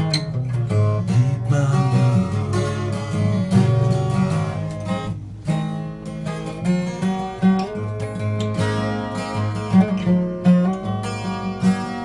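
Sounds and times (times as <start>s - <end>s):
acoustic guitar strummed: 0.0s - 12.0s.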